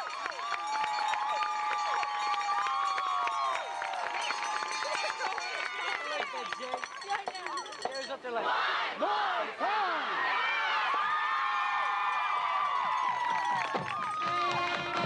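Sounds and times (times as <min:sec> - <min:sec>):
crowd cheering and shouting: 0:00.0 - 0:06.8, 0:08.4 - 0:15.0.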